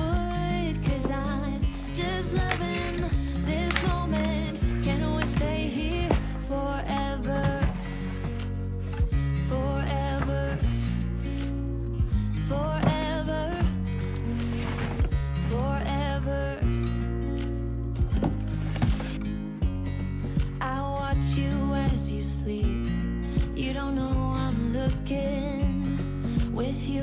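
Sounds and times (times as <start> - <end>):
song with sung vocal: 0.0 - 17.5, 20.4 - 27.0.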